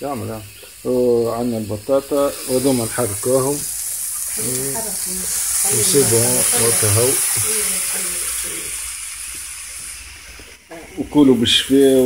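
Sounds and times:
skewers sizzling on grill pan: 0.0 - 12.0.

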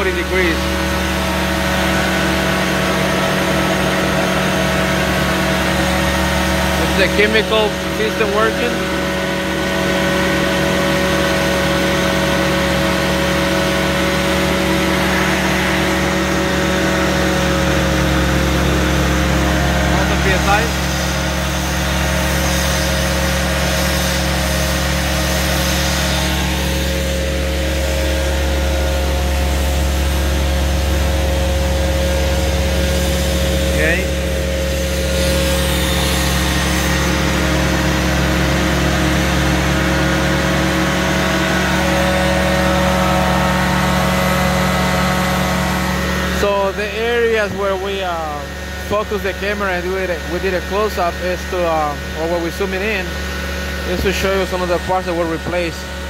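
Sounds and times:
carpet-cleaning machine running: 0.0 - 56.0
steady machine whine: 0.0 - 56.0.

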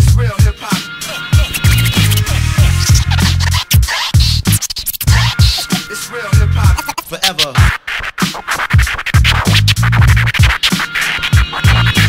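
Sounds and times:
hip hop beat with heavy bass: 0.0 - 12.0
turntable scratching: 0.0 - 12.0.

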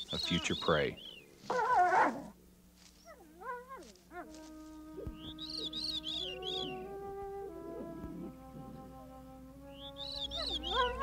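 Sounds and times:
wolf pups whining and yelping: 1.4 - 4.4, 5.0 - 11.0
music of long held notes: 4.1 - 11.0.

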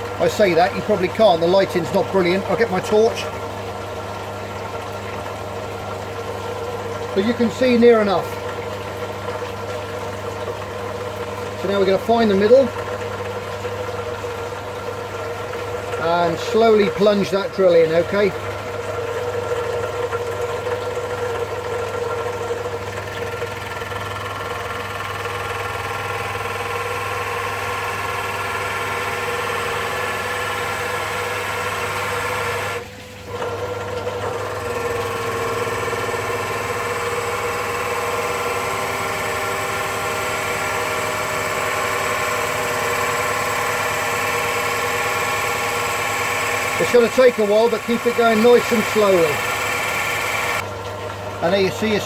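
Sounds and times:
pillar drill boring into wood: 0.0 - 3.4, 7.1 - 8.6, 11.6 - 12.8, 16.0 - 18.3, 20.0 - 50.7.

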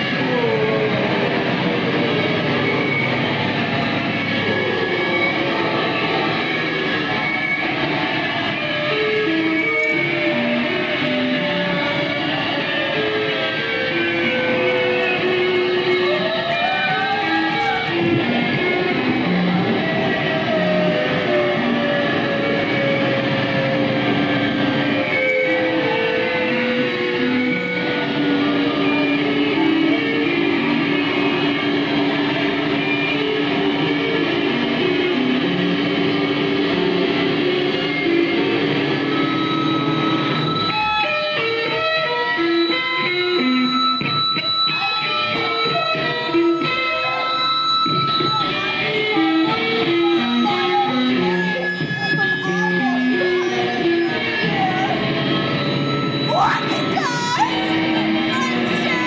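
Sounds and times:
noisy electric guitar music: 0.0 - 59.0.

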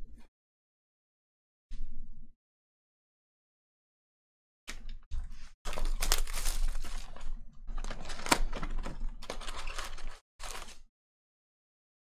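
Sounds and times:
plastic wrap tearing and crinkling: 5.7 - 10.9.

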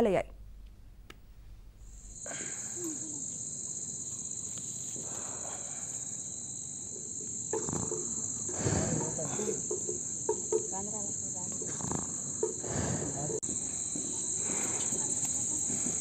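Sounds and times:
insects chirring: 0.0 - 16.0
faint voices: 13.0 - 16.0.

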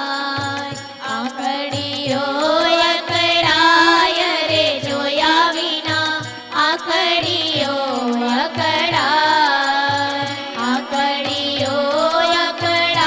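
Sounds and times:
tabla beat: 0.0 - 13.0
women singing devotional song: 0.0 - 13.0.

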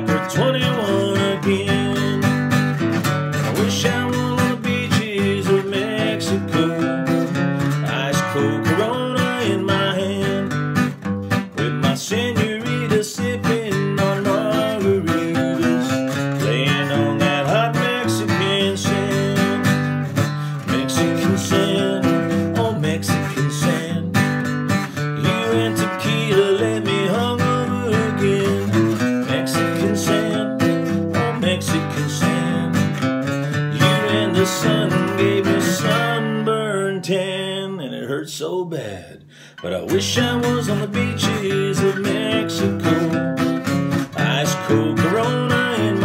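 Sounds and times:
acoustic guitar strumming: 0.0 - 38.0, 38.8 - 46.0
man singing country song: 0.0 - 46.0.

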